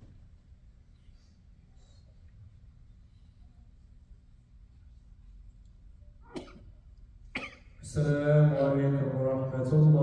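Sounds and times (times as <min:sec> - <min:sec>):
person coughing: 0:06.2 - 0:07.8.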